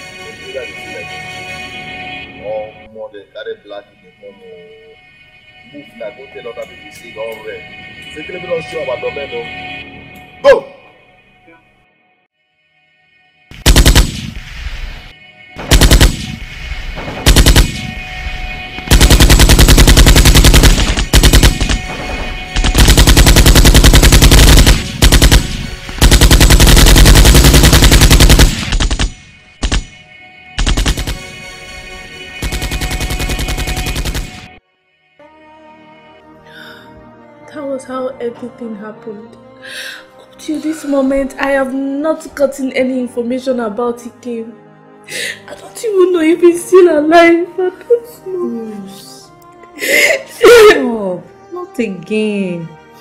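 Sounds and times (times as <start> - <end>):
automatic gunfire bursts: 13.6 - 14.4, 15.6 - 16.4, 17.2 - 18.0, 18.9 - 29.9, 30.6 - 31.3, 32.4 - 34.5.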